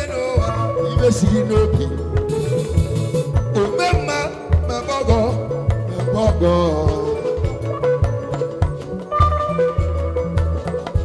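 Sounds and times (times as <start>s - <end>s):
live band music through speakers: 0.0s - 11.0s.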